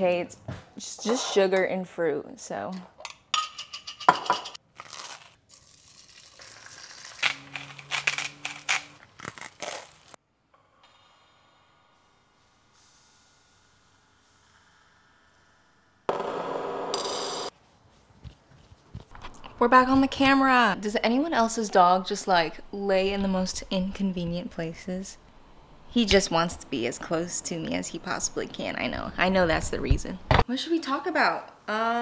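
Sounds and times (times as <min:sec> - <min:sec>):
loud burst of noise: 0:11.1 - 0:17.5.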